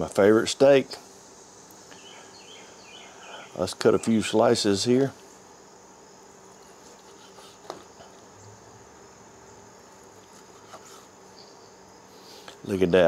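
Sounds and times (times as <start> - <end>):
faint high whine: 0.0 - 13.0.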